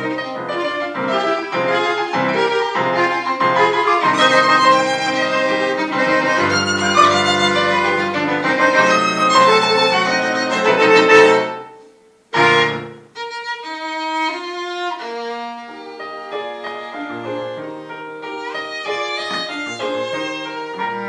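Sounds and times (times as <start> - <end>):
electric keyboard: 0.0 - 11.8
violin: 0.0 - 11.8, 12.4 - 21.0
keyboard harmonica: 0.3 - 11.7
loud chord struck: 3.7 - 11.7.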